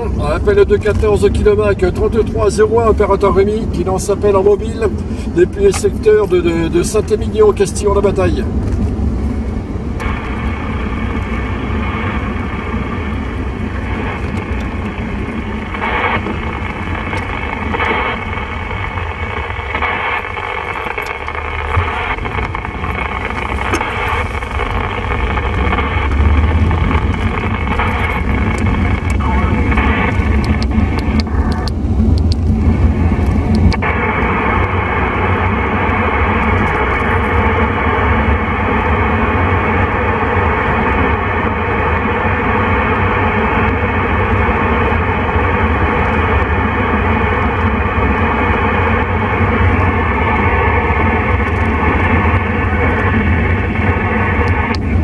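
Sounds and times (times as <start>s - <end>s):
car rumble on road: 0.0s - 55.0s
radio static hiss and crackle: 0.0s - 55.0s.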